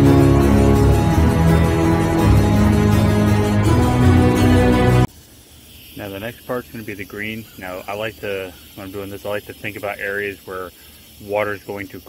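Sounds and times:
background music: 0.0s - 5.1s
faint hiss: 5.1s - 12.0s
man talking: 6.0s - 12.0s.

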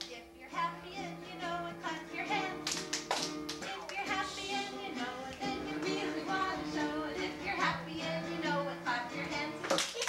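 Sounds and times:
children singing: 0.6s - 2.8s, 3.6s - 10.0s
hand claps: 2.6s - 4.2s, 9.6s - 10.0s.

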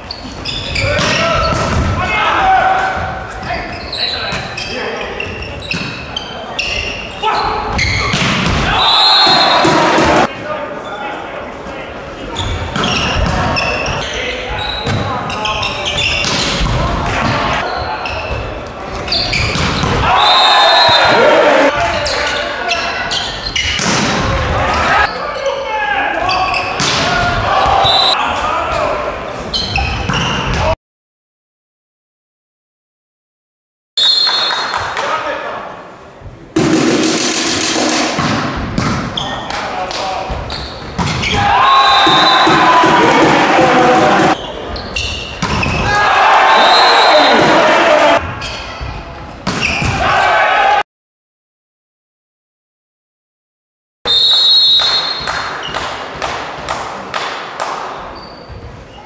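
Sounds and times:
players shouting and calling: 0.0s - 30.8s, 39.0s - 50.8s
volleyball thuds: 8.0s - 10.3s, 40.3s - 44.3s.

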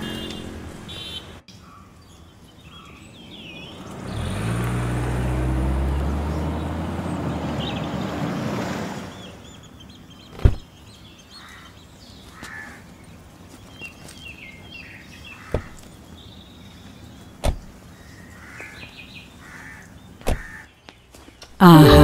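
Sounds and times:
car engine and tyre noise: 0.0s - 11.2s, 12.0s - 21.6s
birds chirping: 0.0s - 22.0s.

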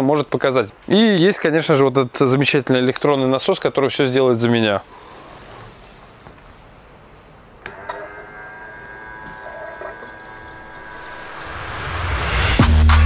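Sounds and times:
pump switch click: 7.6s - 10.5s
electric pump whining: 7.6s - 12.6s.

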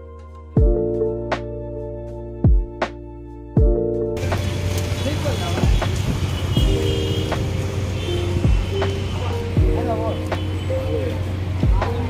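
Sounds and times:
music: 0.0s - 12.0s
vehicle traffic: 4.2s - 12.0s
people's voices: 8.8s - 12.0s.

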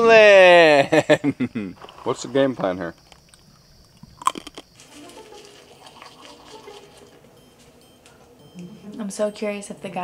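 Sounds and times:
sharp crunching clicks: 2.9s - 4.8s
faint background music: 4.8s - 10.0s.

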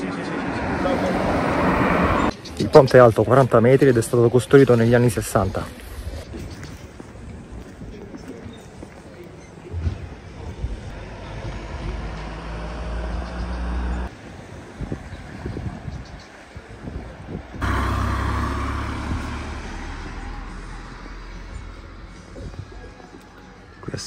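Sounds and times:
vehicles passing close by: 0.0s - 3.4s, 10.8s - 23.9s.

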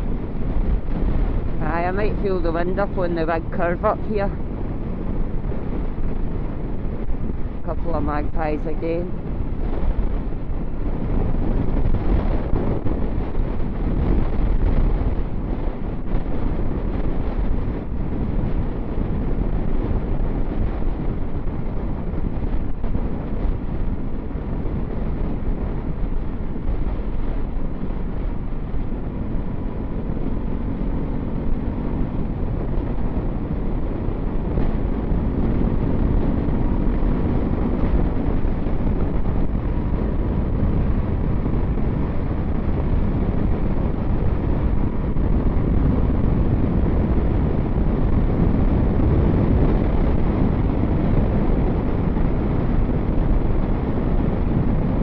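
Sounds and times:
motorcycle engine hum: 0.0s - 55.0s
wind buffeting microphone: 0.0s - 55.0s.

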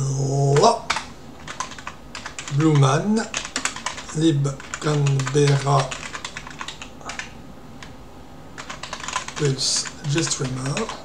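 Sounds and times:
computer keyboard typing: 0.6s - 7.9s, 8.6s - 11.0s.

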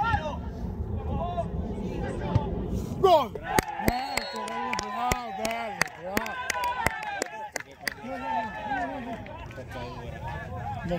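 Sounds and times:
low rumble: 0.0s - 3.6s
people shouting: 3.0s - 7.3s.

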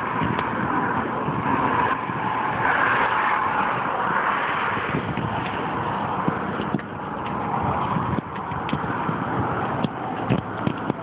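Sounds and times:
outdoor background noise: 0.0s - 11.0s
small clicks and knocks: 9.8s - 11.0s.

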